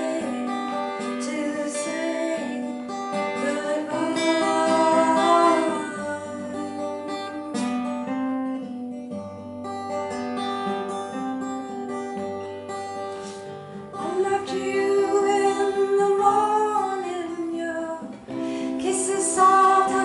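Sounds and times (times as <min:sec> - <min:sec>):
woman singing wavering line: 0:00.0 - 0:02.7, 0:03.3 - 0:07.6, 0:14.0 - 0:18.1
acoustic guitar: 0:00.0 - 0:20.0.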